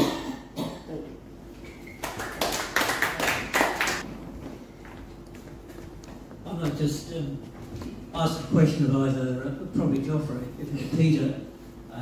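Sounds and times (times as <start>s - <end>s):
small audience clapping: 1.8s - 4.1s.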